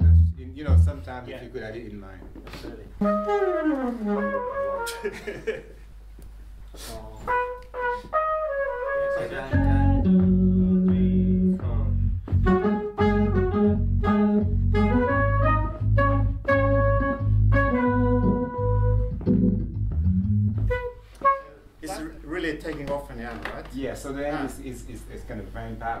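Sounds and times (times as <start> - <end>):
saxophone melody: 0.0 - 0.8, 3.0 - 5.2, 7.2 - 22.0
deep bass notes: 0.0 - 1.2, 9.5 - 21.0
keyboard chords: 3.0 - 5.2, 7.3 - 21.5.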